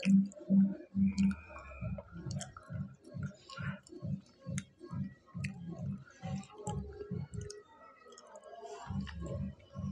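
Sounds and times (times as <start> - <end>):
wet mouth clicks: 0.0 - 4.7, 5.4 - 9.3.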